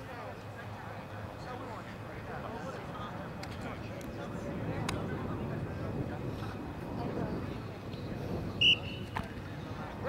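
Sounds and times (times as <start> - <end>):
murmur of voices: 0.0 - 10.0
shrill referee whistle blast: 8.6 - 9.2.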